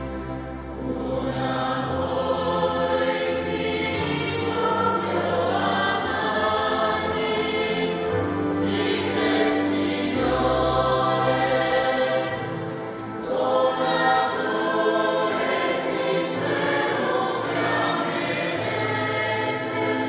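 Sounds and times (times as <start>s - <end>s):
church choir singing a hymn: 0.0s - 20.0s.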